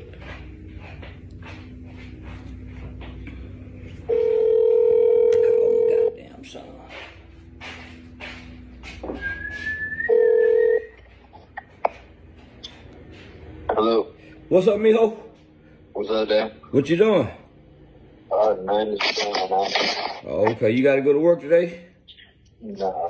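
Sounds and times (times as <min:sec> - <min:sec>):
phone ringback tone: 0:04.1 - 0:06.1, 0:10.0 - 0:11.0.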